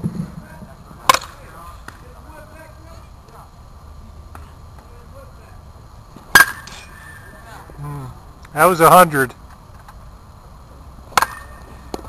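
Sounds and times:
baseball bat hitting ball: 0:01.0 - 0:02.0, 0:06.2 - 0:07.3, 0:11.1 - 0:12.0.

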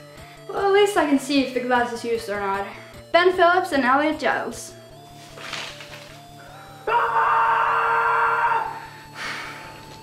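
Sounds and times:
background music: 0:00.0 - 0:10.0
loud yell: 0:06.8 - 0:08.8.

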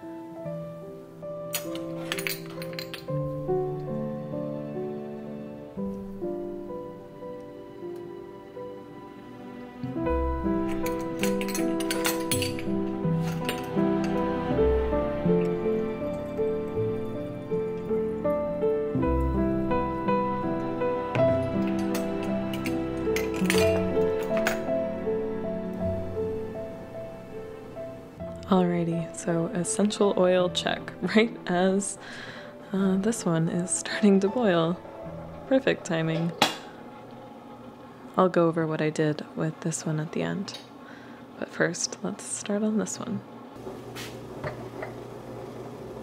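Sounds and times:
soft background music: 0:00.0 - 0:40.8
glass bottles clinking: 0:01.6 - 0:03.2, 0:10.6 - 0:14.3, 0:21.4 - 0:24.7.

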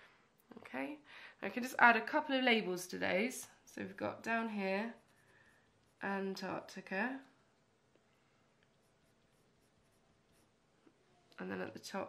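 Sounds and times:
pen scratching on paper: 0:08.7 - 0:10.6.

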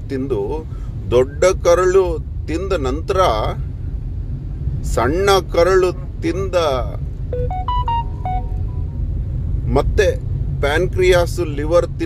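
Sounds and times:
electronic ringtone melody: 0:07.3 - 0:09.0.

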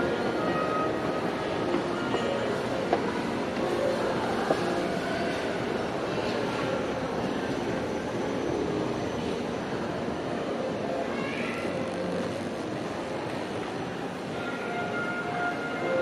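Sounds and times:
indoor mall hum and hiss: 0:00.0 - 0:16.0.

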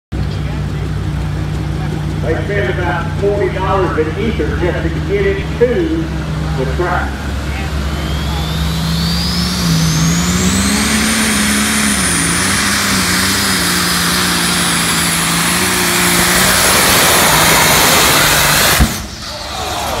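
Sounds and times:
diesel tractor engine: 0:00.1 - 0:20.0
turbo whine: 0:00.2 - 0:19.4
sharp bang: 0:17.7 - 0:19.4.

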